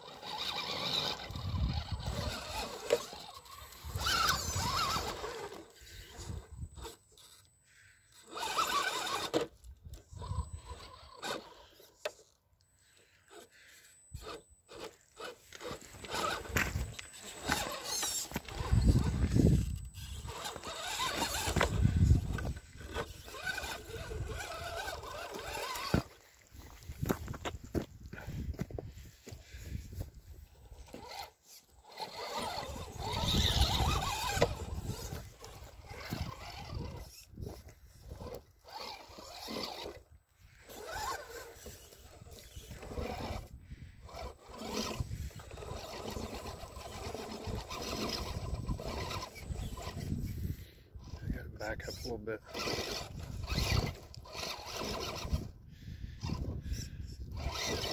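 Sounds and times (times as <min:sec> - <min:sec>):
tyres scraping on stones: 0:00.0 - 0:07.4, 0:08.1 - 0:12.3, 0:13.3 - 0:55.5, 0:56.2 - 0:57.9
rc car motors whirring: 0:00.0 - 0:57.9.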